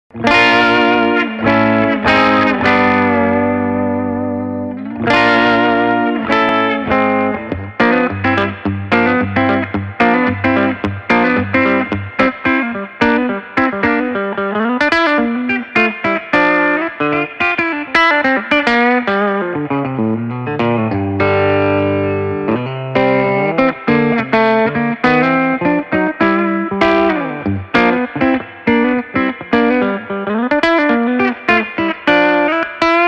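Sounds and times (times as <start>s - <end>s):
electric guitar riff through amplifier: 0.1s - 33.0s.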